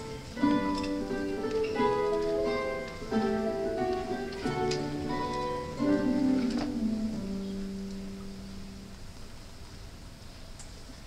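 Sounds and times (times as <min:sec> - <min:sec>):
guitar ensemble notes ringing: 0:00.0 - 0:09.1
faint room noise: 0:00.0 - 0:11.0.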